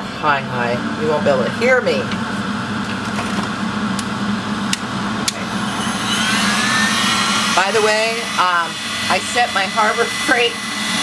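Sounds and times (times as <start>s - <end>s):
ventilation fan humming: 0.0s - 11.0s.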